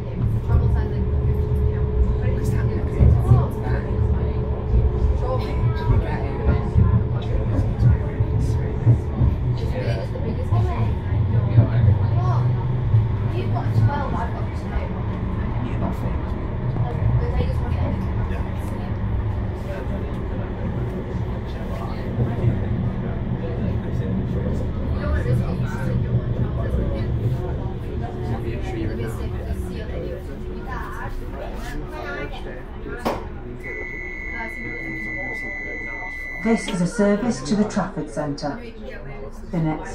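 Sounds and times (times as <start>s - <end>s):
tram rumbling along track: 0.0s - 38.5s
indistinct voices: 0.0s - 38.7s, 39.3s - 39.9s.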